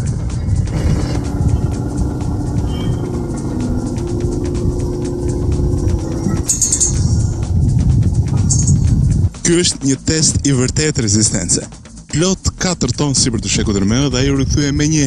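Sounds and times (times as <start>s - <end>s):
road roller diesel engine rumble: 0.0s - 9.4s
background music: 0.0s - 15.0s.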